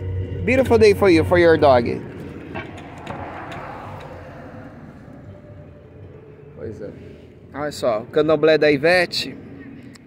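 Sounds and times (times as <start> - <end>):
distant traffic: 0.4 - 10.0.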